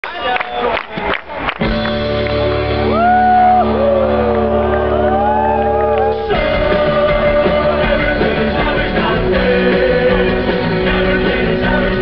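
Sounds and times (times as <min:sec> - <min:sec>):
rock band sustained chord: 0:01.7 - 0:12.0
crowd whooping and shouting: 0:02.0 - 0:07.2.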